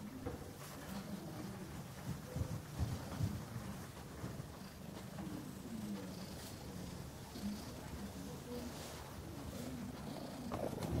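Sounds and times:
cat purring: 0.0 - 11.0.

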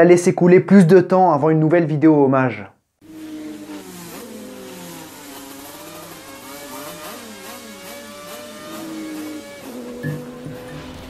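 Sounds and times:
racing car engines revving: 3.0 - 11.0.

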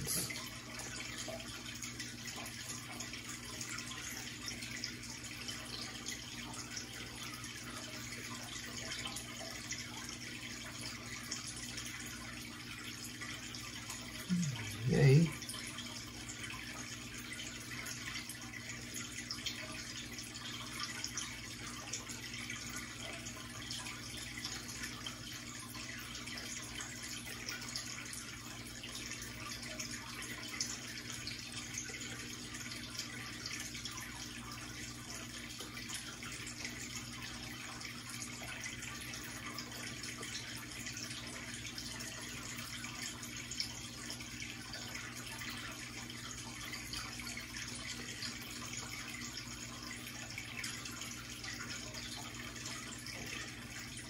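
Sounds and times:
aquarium water trickling: 0.0 - 54.0
low steady hum: 0.0 - 54.0.

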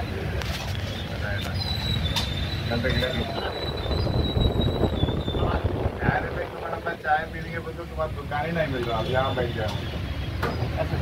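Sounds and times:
low rumbling on microphone: 1.8 - 8.2.

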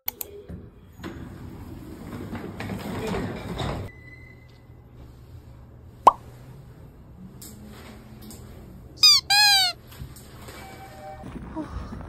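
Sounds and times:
cartoon whistle notes: 9.0 - 9.8.

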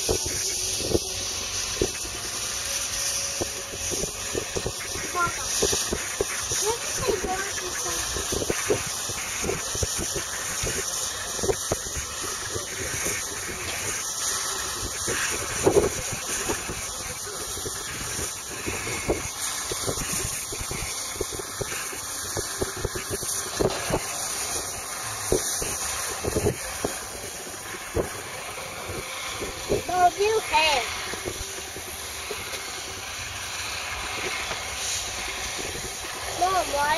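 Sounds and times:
steady hiss: 0.0 - 36.9.

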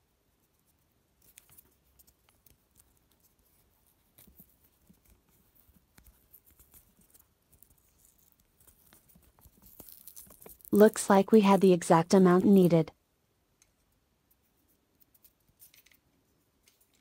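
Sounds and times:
wires twisting clicks and rustles: 1.1 - 10.8, 13.6 - 17.0
electrical tape wrapping: 1.3 - 11.0.

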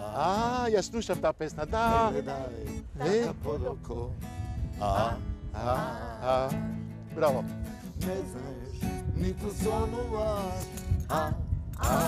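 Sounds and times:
acoustic guitar: 0.0 - 12.0
man and woman singing: 1.8 - 4.0, 4.8 - 6.6, 7.9 - 12.0.

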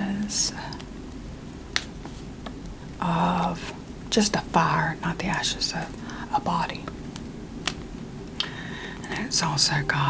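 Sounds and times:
low hiss: 0.0 - 10.0.

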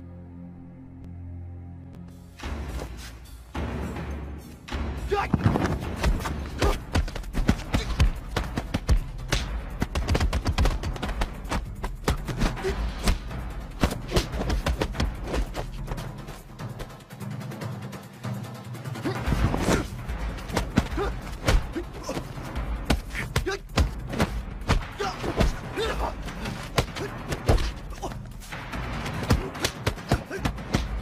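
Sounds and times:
film score music: 0.0 - 31.0
punch and kick impacts: 5.1 - 15.7, 19.3 - 31.0.

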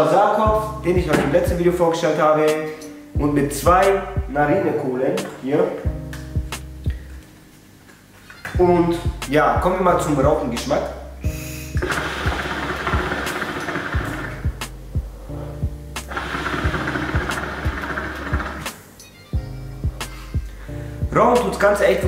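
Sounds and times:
background music with beat: 0.4 - 22.0.

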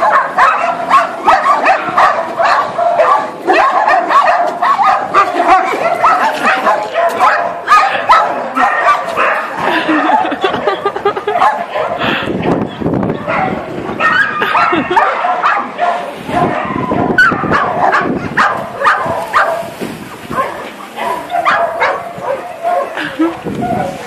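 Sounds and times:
dogs barking and yipping: 0.0 - 24.0.

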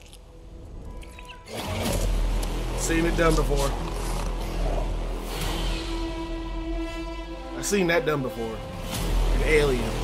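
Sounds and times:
dramatic trailer score: 0.0 - 10.0.

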